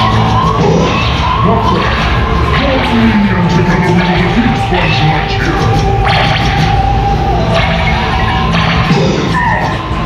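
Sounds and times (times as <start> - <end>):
dark-ride soundtrack music: 0.0 - 10.0.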